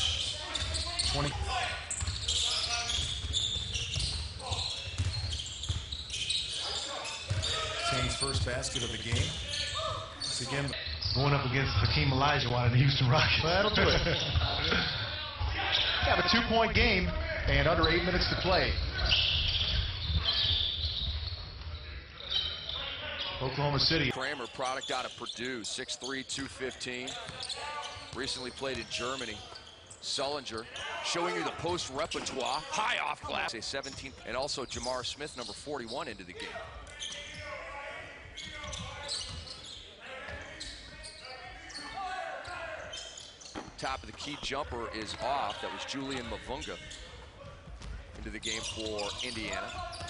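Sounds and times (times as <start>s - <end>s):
voices in a hall: 0.0s - 50.0s
ball bouncing on hardwood court: 2.9s - 6.3s, 8.3s - 9.5s, 47.4s - 48.7s
basketball bouncing on hardwood: 4.9s - 5.9s.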